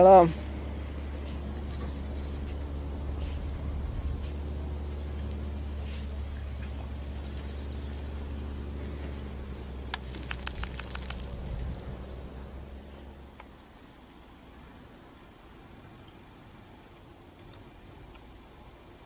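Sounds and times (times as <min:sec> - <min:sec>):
vehicle engine hum: 0:00.0 - 0:19.0
metallic jingles and clicks: 0:05.2 - 0:06.2, 0:09.8 - 0:12.1.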